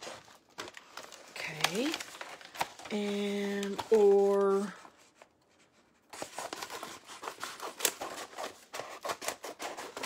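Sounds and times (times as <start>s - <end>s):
transfer sheets crinkling: 0.0s - 10.0s.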